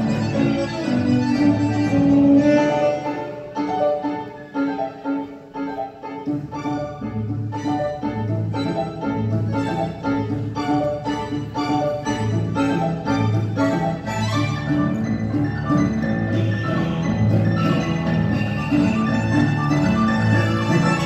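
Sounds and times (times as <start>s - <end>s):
tango quintet playing: 0.0s - 21.0s
double bass pulse: 7.0s - 21.0s.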